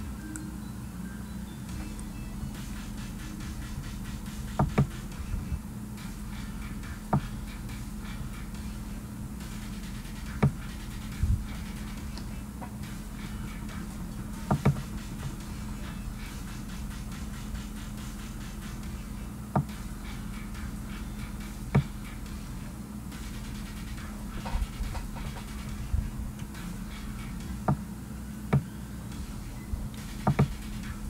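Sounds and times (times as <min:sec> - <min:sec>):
low electrical hum: 0:00.0 - 0:31.0.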